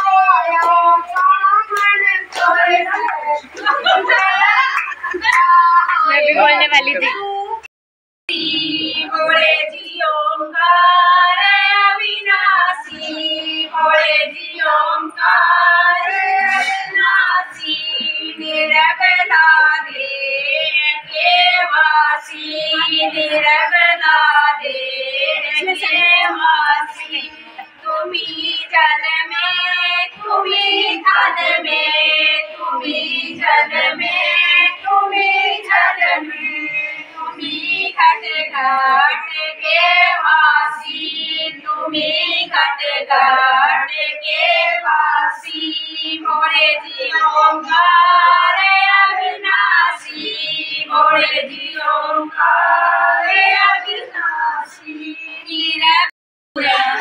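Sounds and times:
women singing devotional song: 0.0 - 7.7, 8.3 - 57.0.

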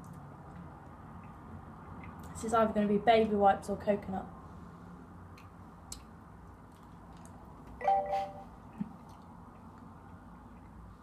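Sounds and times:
electronic chime: 7.8 - 8.5.

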